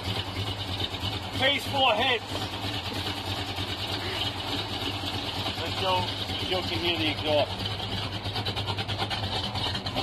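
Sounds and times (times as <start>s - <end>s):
car exhaust idling: 0.0s - 10.0s.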